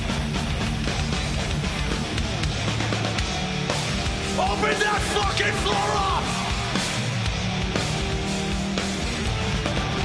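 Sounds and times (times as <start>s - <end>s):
bass guitar: 0.0s - 10.0s
distorted electric guitars: 0.0s - 10.0s.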